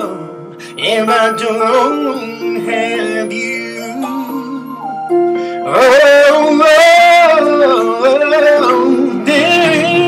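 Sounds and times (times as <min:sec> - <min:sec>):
man singing a gospel ballad: 0:00.0 - 0:10.0
sustained backing music: 0:00.0 - 0:10.0.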